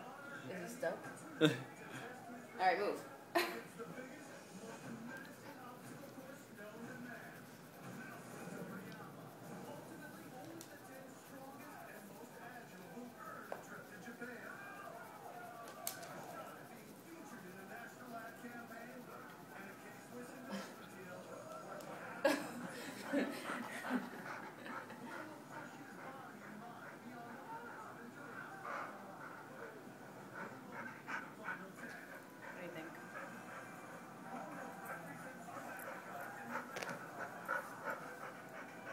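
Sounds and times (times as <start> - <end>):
faint indistinct voices talking: 0.0 - 38.9
dog panting: 3.7 - 38.9.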